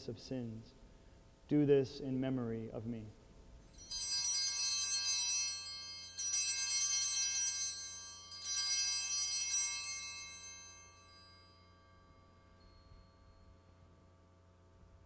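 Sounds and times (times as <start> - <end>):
altar bells ringing: 3.6 - 14.8.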